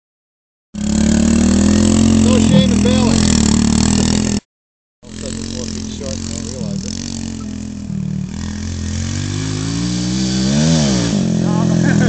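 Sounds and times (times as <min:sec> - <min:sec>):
small motorbike engine running: 0:00.8 - 0:04.4, 0:05.0 - 0:12.0
person's voice: 0:02.2 - 0:03.3, 0:05.1 - 0:07.0.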